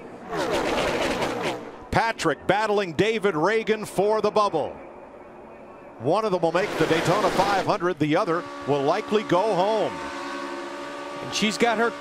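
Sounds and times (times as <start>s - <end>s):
race cars passing at full throttle: 6.4s - 12.0s.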